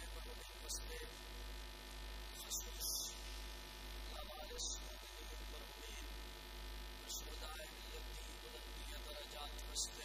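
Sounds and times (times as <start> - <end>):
electrical buzz with mains hum: 0.0 - 10.0.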